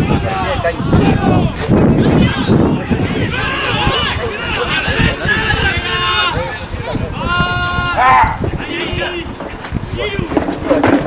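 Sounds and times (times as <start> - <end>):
spectators calling out: 0.0 - 11.0
long held shout: 2.2 - 8.4.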